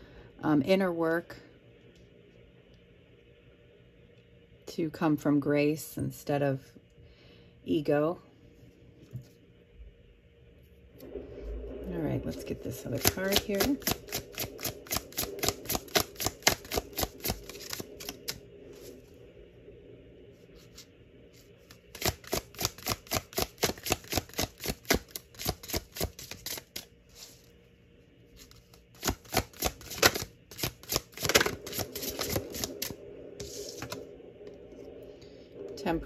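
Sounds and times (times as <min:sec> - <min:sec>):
cards being shuffled: 0:13.0 - 0:18.4, 0:21.7 - 0:27.5, 0:28.4 - 0:34.0.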